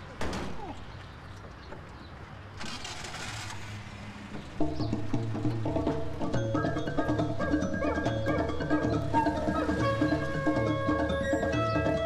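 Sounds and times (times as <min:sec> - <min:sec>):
truck engine humming: 0:02.6 - 0:12.0
lively film music: 0:04.5 - 0:12.0.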